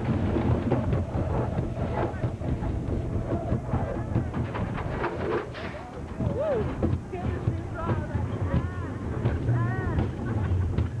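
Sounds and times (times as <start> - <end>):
ride train rumbling on track: 0.0 - 11.0.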